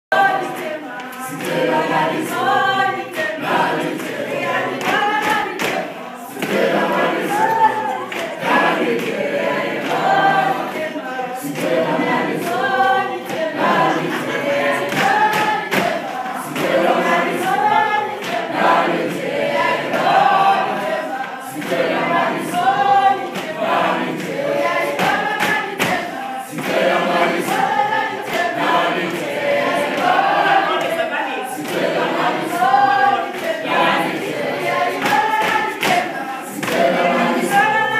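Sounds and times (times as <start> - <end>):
children singing together: 0.1 - 37.9
hand claps: 0.2 - 37.9.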